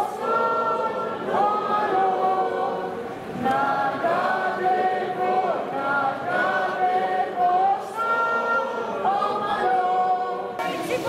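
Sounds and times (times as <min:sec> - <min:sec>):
crowd singing in unison: 0:00.0 - 0:11.0.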